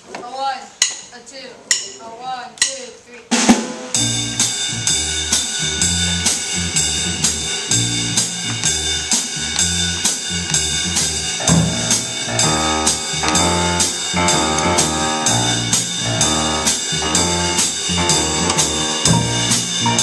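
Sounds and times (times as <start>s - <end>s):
drum kit keeping time: 3.3s - 20.0s
bass line: 4.0s - 20.0s
higher-pitched instruments: 11.2s - 20.0s.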